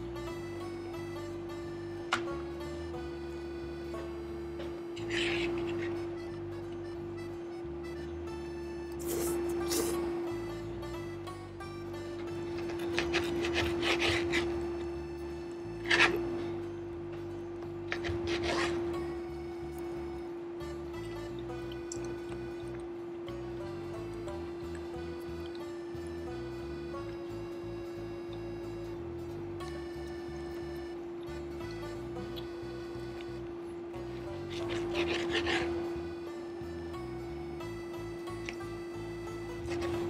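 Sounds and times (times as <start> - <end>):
background music held note: 0.0 - 40.0
fork on plate: 15.9 - 16.3
chewing: 34.2 - 35.8.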